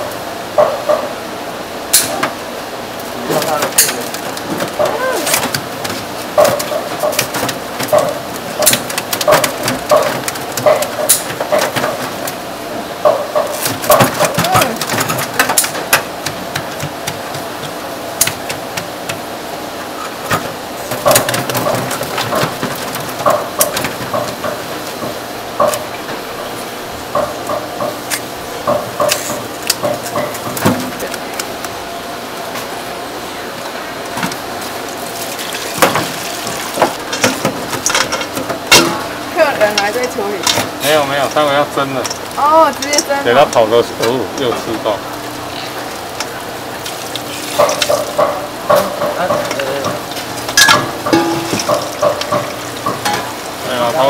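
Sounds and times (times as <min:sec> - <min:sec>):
shells clattering in metal sink: 0:47.6 - 0:53.3.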